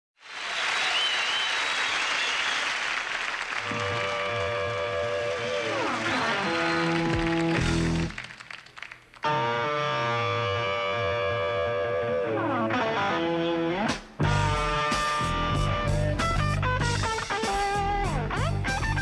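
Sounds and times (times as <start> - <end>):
studio audience cheering and applauding: 0.2 - 9.4
fast distorted guitar riff: 3.6 - 8.2, 9.2 - 19.0
electric guitar with falling slide: 3.7 - 8.1, 9.2 - 19.0.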